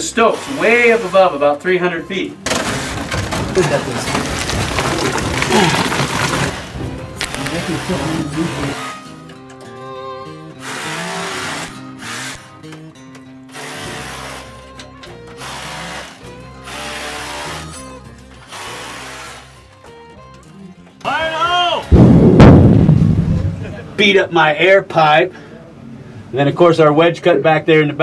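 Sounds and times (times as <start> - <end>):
underground rock blast: 21.8 - 24.3.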